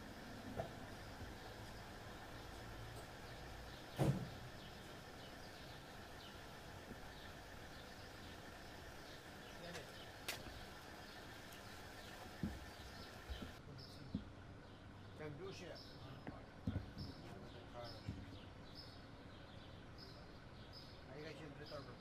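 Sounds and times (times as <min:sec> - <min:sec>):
distant traffic hum: 0:00.0 - 0:22.0
faint bird chirps: 0:07.1 - 0:16.2.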